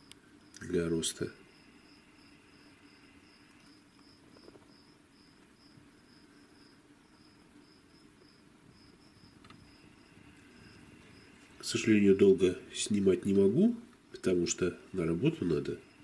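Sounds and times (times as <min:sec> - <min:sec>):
faint insect chirping: 0:00.0 - 0:16.0.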